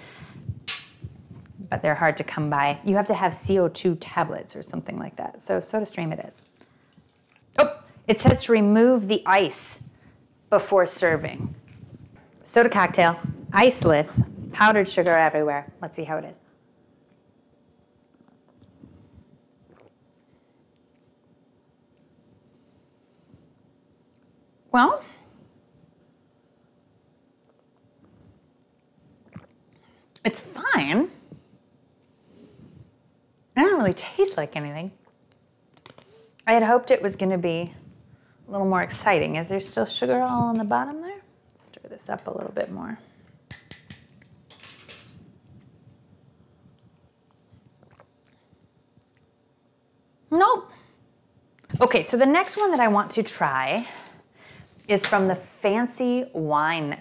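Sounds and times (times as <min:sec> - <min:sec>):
person sipping and swallowing drink: 0:06.6 - 0:07.6, 0:18.0 - 0:21.1, 0:29.1 - 0:30.2, 0:46.7 - 0:49.4
spoon clinking in a glass: 0:43.5 - 0:45.1.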